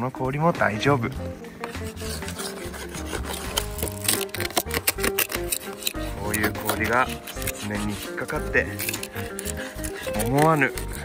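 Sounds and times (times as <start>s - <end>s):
light background music: 0.0s - 11.0s
scraper scraping snowboard: 1.7s - 11.0s.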